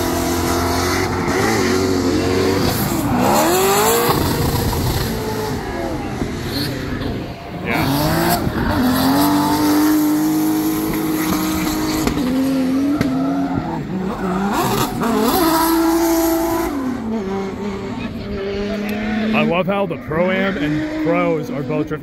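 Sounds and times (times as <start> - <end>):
car engines revving high: 0.0 - 22.0
tires squealing: 0.0 - 22.0.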